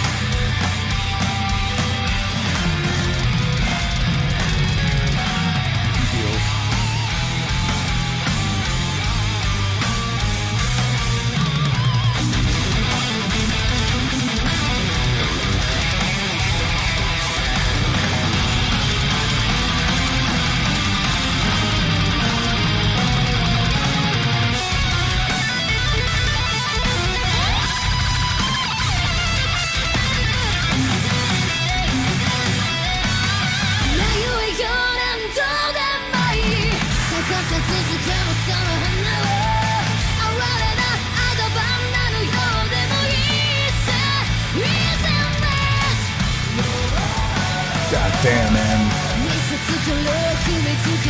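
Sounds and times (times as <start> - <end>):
heavy metal band playing: 0.0 - 51.0.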